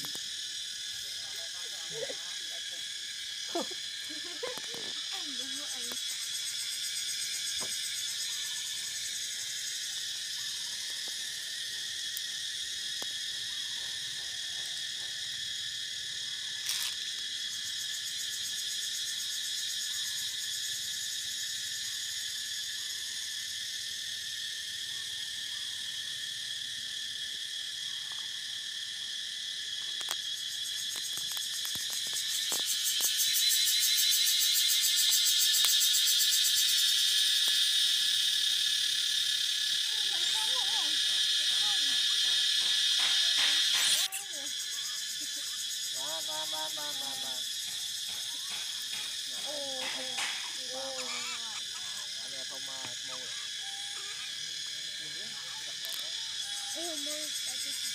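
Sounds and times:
insect chorus buzzing: 0:00.0 - 0:57.9.

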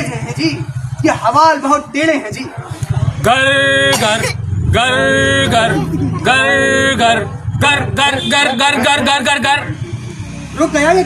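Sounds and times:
voices holding long steady tones: 0:02.4 - 0:11.0
fast low vocal chugging: 0:02.6 - 0:08.0.

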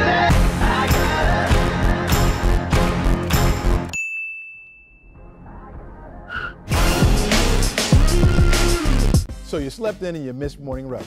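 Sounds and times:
high chime ding: 0:03.9 - 0:05.4
music with heavy beat: 0:06.7 - 0:09.3.

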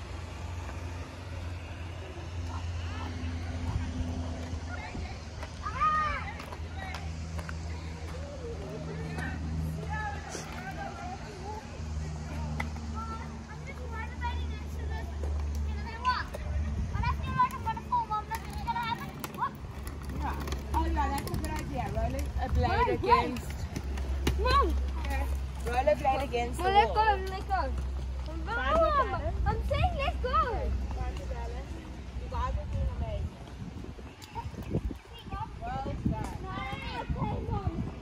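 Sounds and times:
children calling and chattering: 0:00.0 - 0:38.0
footsteps on paved path: 0:00.0 - 0:38.0
people talking: 0:02.0 - 0:23.7, 0:24.3 - 0:33.4, 0:34.1 - 0:38.0
inline skate wheels rolling: 0:12.3 - 0:32.4.

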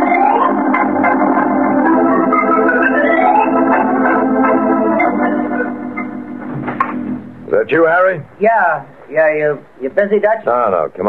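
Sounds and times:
organ music: 0:00.0 - 0:08.2.

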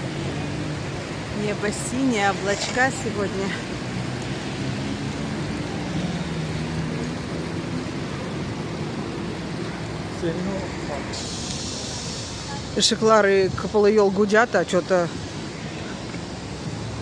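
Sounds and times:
murmur of passers-by voices: 0:00.0 - 0:17.0
traffic noise: 0:00.0 - 0:17.0.

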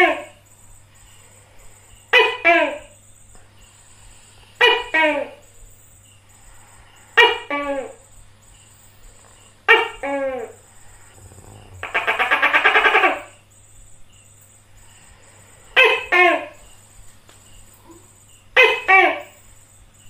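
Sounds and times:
gecko fast rattling call: 0:04.6 - 0:16.8
gecko calling two-syllable call: 0:09.7 - 0:13.4.

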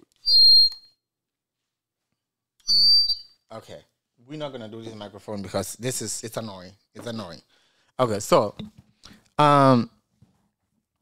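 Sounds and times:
microphone feedback squeal: 0:00.2 - 0:01.0, 0:02.6 - 0:03.4.

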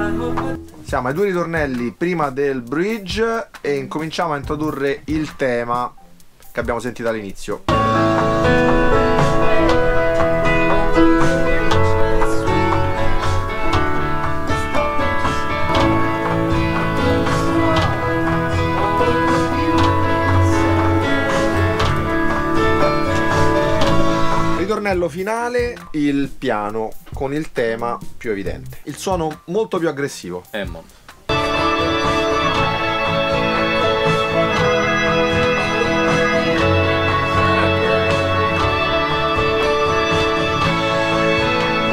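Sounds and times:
keyboard piano melody: 0:00.0 - 0:03.2, 0:04.4 - 0:25.0, 0:31.3 - 0:41.9
pop backing track: 0:00.0 - 0:41.9
synth pad chords: 0:07.7 - 0:24.7, 0:31.3 - 0:41.9.

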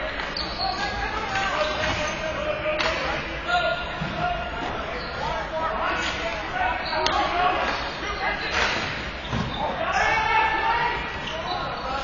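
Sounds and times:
players shouting: 0:00.6 - 0:12.0.

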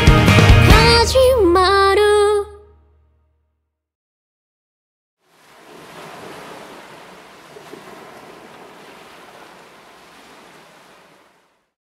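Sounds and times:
ocean surf rushing: 0:05.3 - 0:11.6.

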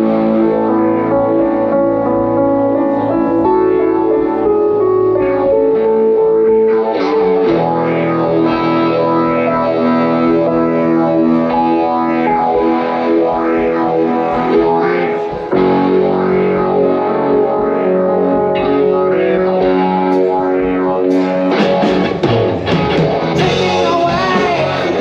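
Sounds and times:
distorted electric guitar: 0:00.0 - 0:25.0
bass and drums: 0:20.6 - 0:25.0.

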